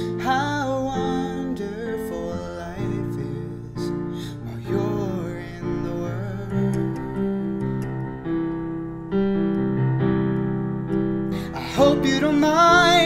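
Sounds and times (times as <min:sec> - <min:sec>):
man singing: 0:00.0 - 0:07.8, 0:11.4 - 0:13.0
piano ballad chords: 0:00.0 - 0:13.0.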